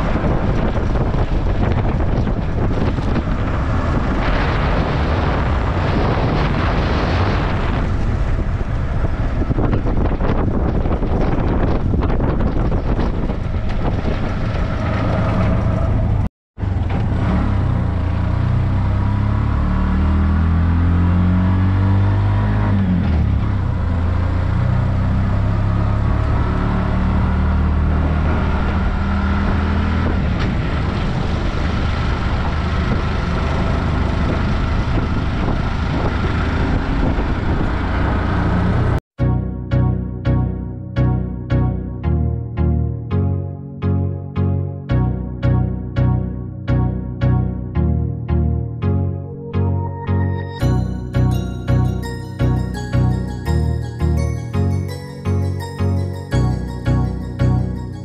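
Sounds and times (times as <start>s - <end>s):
road and wind noise: 0.0s - 39.0s, 50.0s - 58.0s
small engine running: 16.8s - 39.0s.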